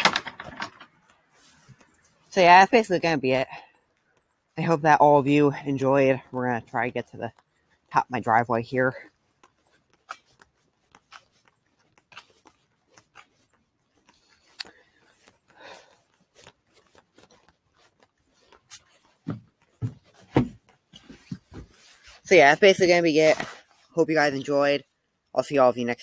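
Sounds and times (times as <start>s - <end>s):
footsteps on pavement: 3.8s - 23.5s
camera handling rubbing: 9.1s - 22.2s.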